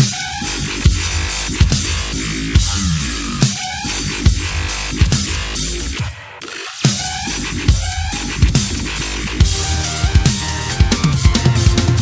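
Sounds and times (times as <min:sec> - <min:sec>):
drum kit playing: 0:00.0 - 0:06.2, 0:06.8 - 0:12.0
music with bass and chords: 0:00.0 - 0:12.0.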